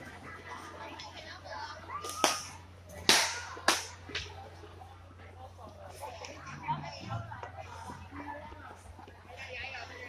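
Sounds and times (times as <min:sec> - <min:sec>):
loud sharp cracks: 0:02.1 - 0:04.0.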